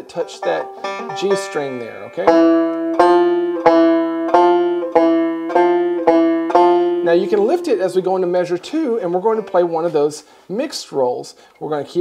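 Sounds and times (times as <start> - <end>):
banjo notes slowly picked: 0.0 - 9.9.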